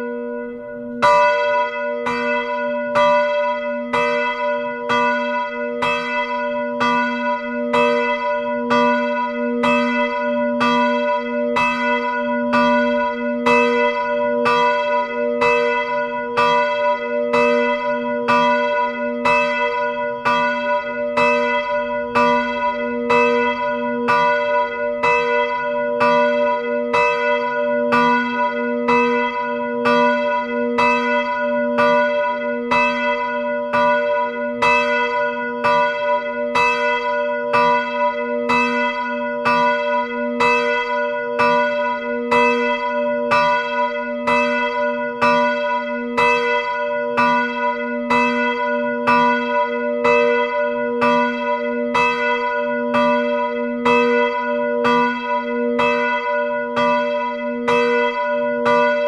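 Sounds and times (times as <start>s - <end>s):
church bell ringing: 0.0s - 59.0s.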